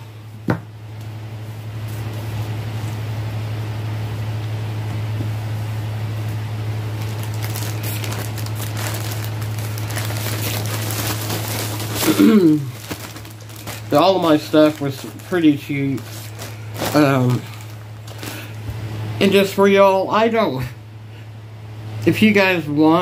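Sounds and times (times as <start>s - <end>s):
low electrical hum: 0.0s - 23.0s
fabric rustling: 5.4s - 18.6s.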